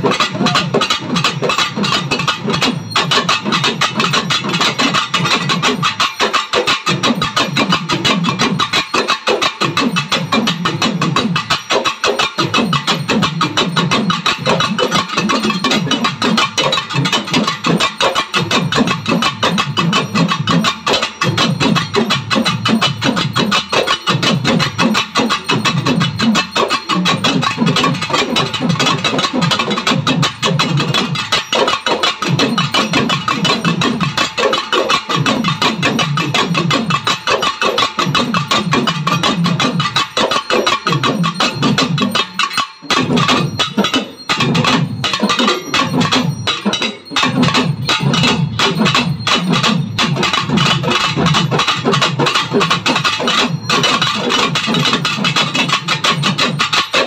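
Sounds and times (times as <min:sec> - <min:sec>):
drum ensemble fast rhythm: 0:00.0 - 0:57.0.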